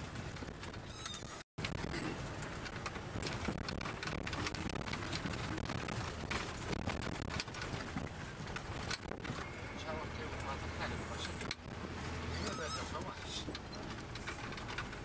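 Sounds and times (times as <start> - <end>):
vehicle engine and road rumble: 0.0 - 15.0
rattles and knocks in cab: 1.6 - 9.9, 11.2 - 15.0.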